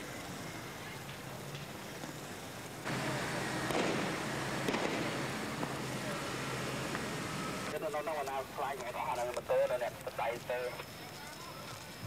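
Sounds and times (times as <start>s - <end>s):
loud street noise: 0.0s - 9.2s
gunshots: 2.9s - 7.7s.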